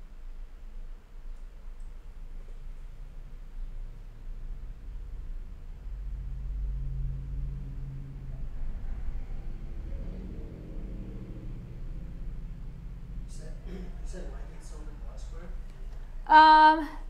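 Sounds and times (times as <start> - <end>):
vehicle engine rumble: 2.5 - 16.3.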